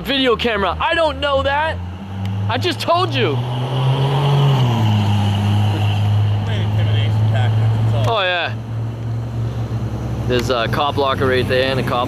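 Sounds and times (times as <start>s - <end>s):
vehicle engine idling: 5.5s - 12.0s.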